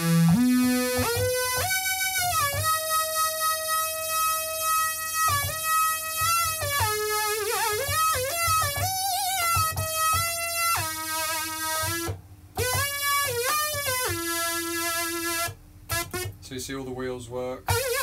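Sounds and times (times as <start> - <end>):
synthesizer gliding single notes: 0.0 - 16.3.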